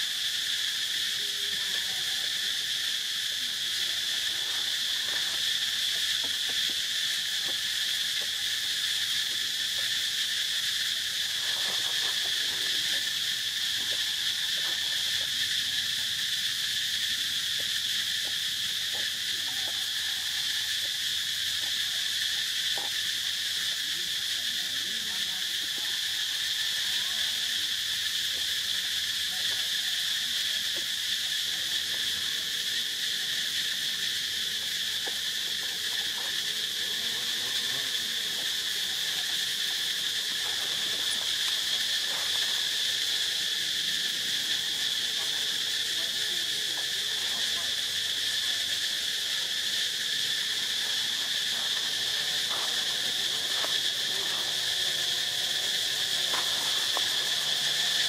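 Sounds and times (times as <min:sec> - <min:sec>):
insect chorus drone: 0:00.0 - 0:58.0.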